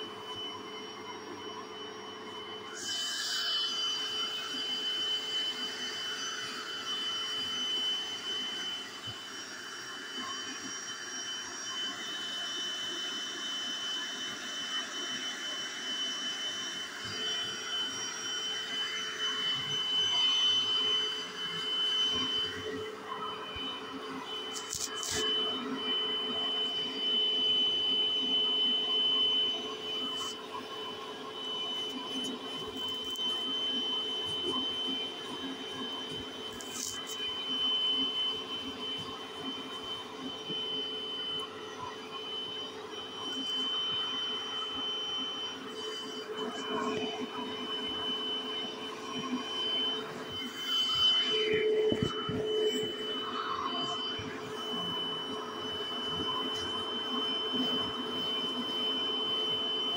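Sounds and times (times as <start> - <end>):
carpet cleaner motor whine: 0.0 - 59.9.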